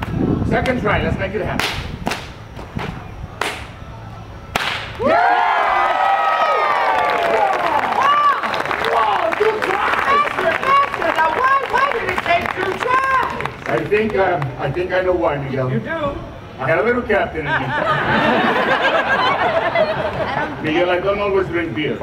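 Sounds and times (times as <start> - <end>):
whip cracking: 1.6 - 3.7, 4.5 - 5.0
people whooping and cheering: 5.0 - 13.6.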